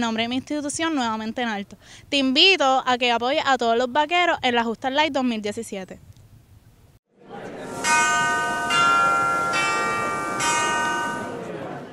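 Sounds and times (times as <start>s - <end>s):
bell-like chime jingle: 7.8s - 11.4s.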